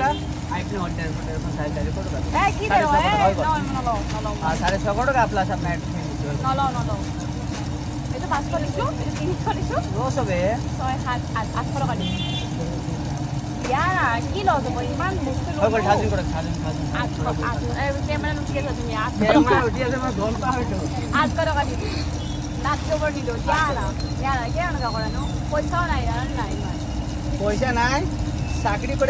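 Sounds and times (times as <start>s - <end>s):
voices chattering: 0.0s - 29.0s
low background hum: 5.0s - 29.0s.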